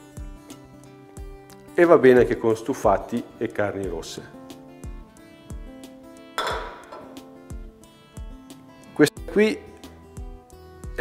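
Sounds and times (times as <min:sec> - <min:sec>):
guitar music with steady beat: 0:00.0 - 0:11.0
glass bottle clinking on metal: 0:06.4 - 0:07.2.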